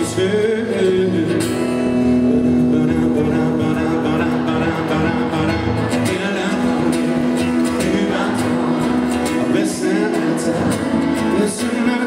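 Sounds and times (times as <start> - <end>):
pop ballad with acoustic guitar: 0.0 - 12.0.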